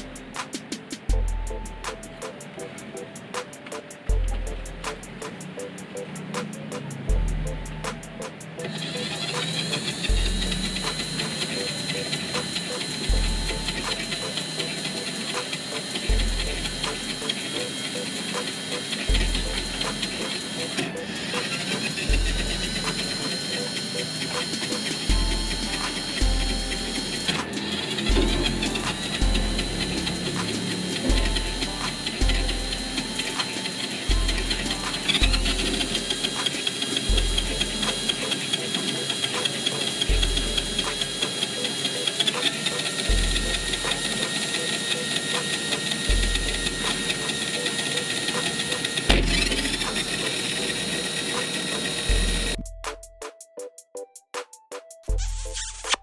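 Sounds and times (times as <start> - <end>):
background music with low beat: 0.0 - 56.0
electric motor whining: 8.6 - 52.7.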